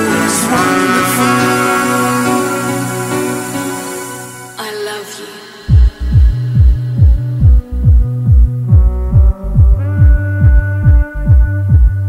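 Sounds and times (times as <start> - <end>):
synth bass: 0.0 - 4.6, 5.7 - 12.0
held synth chord: 0.0 - 5.7
kick drum beat: 5.7 - 12.0.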